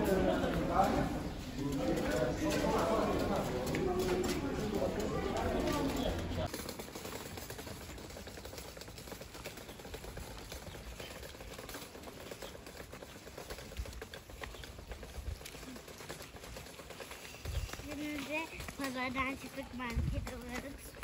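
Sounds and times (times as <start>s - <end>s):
trolley wheels rattling over paving: 0.0s - 21.0s.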